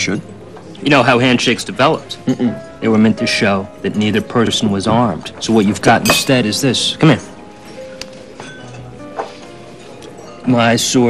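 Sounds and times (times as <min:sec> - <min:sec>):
soft background music: 0:00.0 - 0:11.0
dishes and cutlery clinking: 0:00.1 - 0:11.0.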